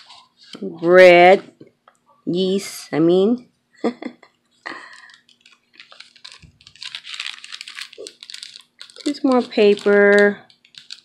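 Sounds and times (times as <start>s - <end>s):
paper pages rustling: 0.0s - 1.5s, 4.7s - 11.0s.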